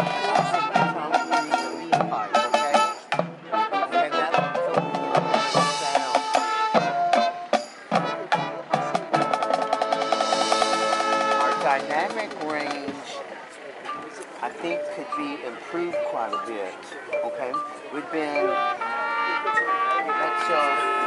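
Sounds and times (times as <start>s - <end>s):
drum hits: 0.0s - 3.5s, 4.4s - 13.1s
brass chords: 0.0s - 13.0s, 17.3s - 21.0s.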